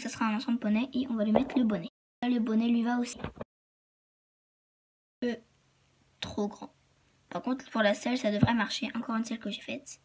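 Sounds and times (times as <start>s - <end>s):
girl speaking: 0.0s - 3.3s, 5.2s - 5.5s, 6.2s - 10.0s.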